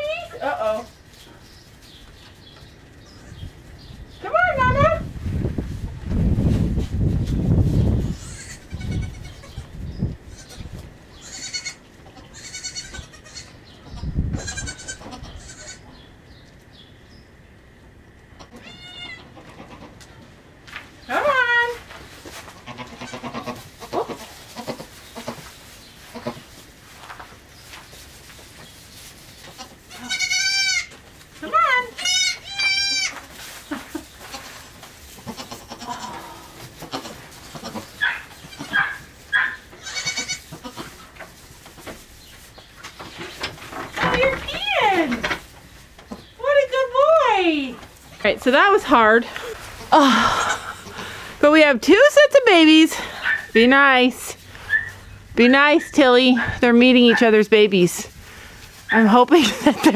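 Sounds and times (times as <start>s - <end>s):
shuffling through straw: 0.0s - 9.9s, 21.1s - 50.0s, 50.6s - 59.9s
rustling: 0.0s - 15.8s, 18.5s - 59.9s
goat kids bleating: 8.0s - 16.0s, 18.4s - 20.1s, 22.5s - 26.5s, 29.5s - 31.0s, 31.7s - 33.3s, 34.0s - 41.1s.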